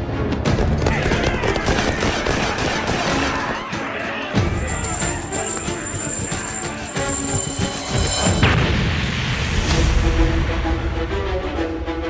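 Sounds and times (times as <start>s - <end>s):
rapid gunfire: 0.5s - 3.7s
men yelling war cry: 1.0s - 6.7s.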